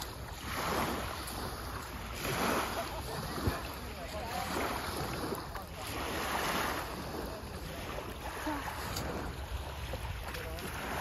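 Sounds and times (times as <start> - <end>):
water sloshing along shore: 0.0 - 11.0
wind on microphone: 0.0 - 11.0.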